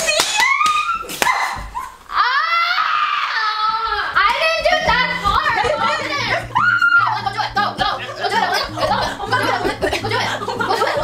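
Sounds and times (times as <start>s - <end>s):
woman shrieking: 6.5s - 7.2s.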